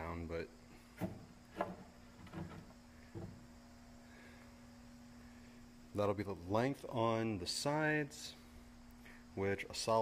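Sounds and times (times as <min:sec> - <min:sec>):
faint steady hum: 0:00.0 - 0:10.0
light knocks: 0:01.0 - 0:03.4.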